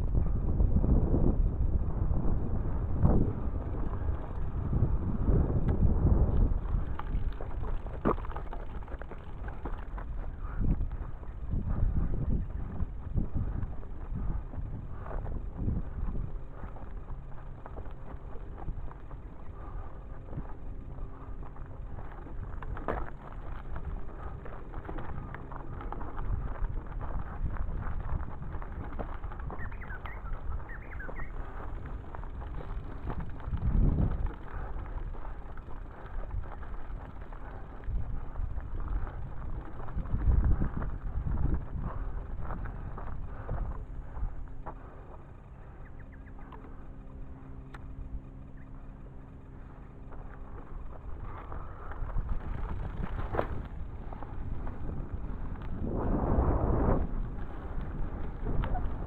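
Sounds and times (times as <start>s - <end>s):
bicycle tyre and frame noise: 0.0s - 59.0s
wind rumbling on microphone: 0.0s - 59.0s.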